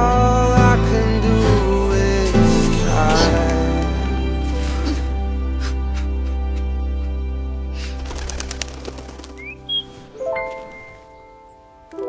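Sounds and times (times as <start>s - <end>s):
held music chord: 0.0s - 12.0s
bird wings flapping: 7.8s - 11.2s
bird chirping: 7.9s - 11.9s.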